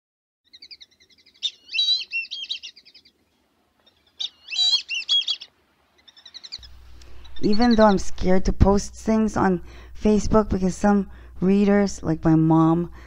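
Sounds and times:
short bird chirps: 0.5 - 3.2, 3.9 - 7.8
bird song: 0.5 - 8.1.

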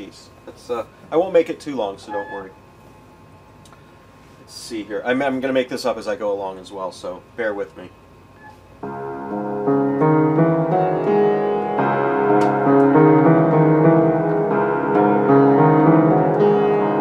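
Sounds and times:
out of tune piano playing: 2.0 - 2.6, 8.8 - 17.0.

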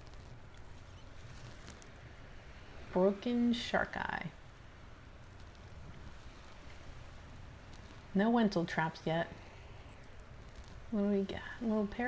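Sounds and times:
light background hiss: 0.0 - 12.0
wind rumble on microphone: 0.0 - 12.0.

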